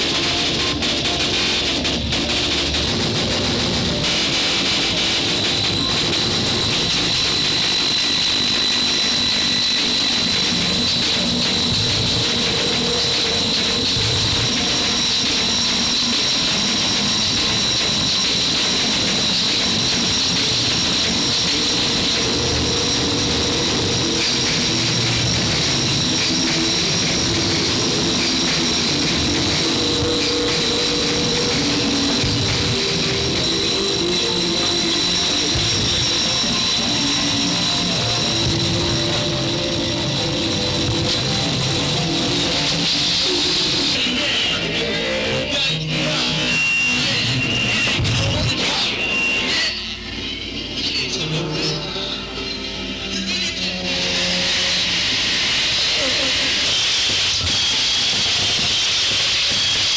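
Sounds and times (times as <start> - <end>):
experimental noise music: 0.0 - 59.9.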